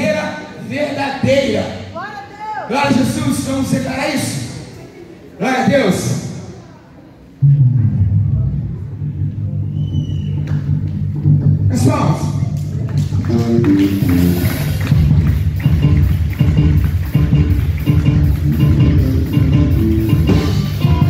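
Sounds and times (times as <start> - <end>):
bass line: 7.4 - 21.0
drums and cymbals: 14.0 - 21.0.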